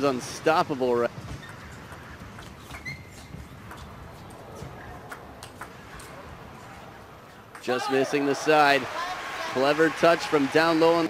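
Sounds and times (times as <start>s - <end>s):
low hall hum: 0.0s - 11.0s
shoe squeak: 1.2s - 5.0s.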